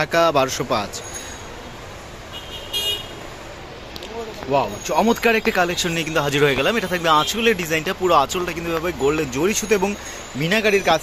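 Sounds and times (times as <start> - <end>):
traffic hum: 0.0 - 11.0
car horn toot: 2.3 - 3.2.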